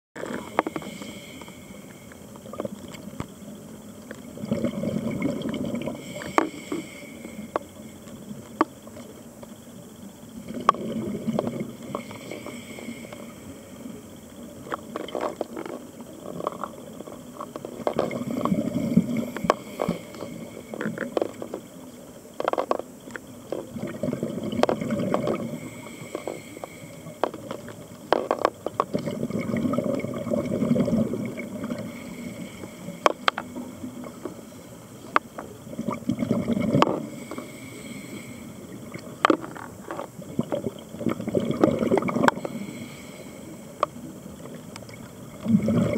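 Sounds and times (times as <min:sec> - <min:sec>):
underwater breathing bubbles: 0:00.2 - 0:03.3, 0:04.1 - 0:08.8, 0:10.3 - 0:45.9.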